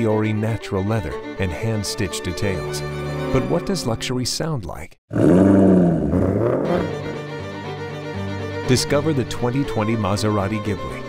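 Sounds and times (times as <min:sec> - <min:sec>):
sustained string-like music: 0:00.1 - 0:04.2, 0:06.9 - 0:11.0.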